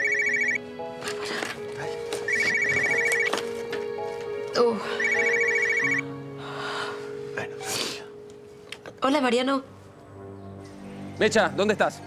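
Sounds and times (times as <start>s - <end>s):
phone ringtone trill: 0.0s - 0.6s, 2.3s - 3.4s, 5.0s - 6.0s.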